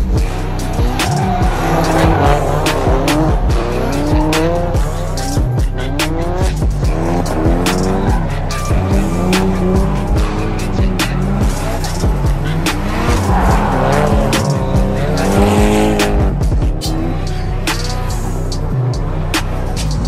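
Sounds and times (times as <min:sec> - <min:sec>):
background music with steady beat: 0:00.0 - 0:20.0
car engine revving: 0:00.0 - 0:20.0.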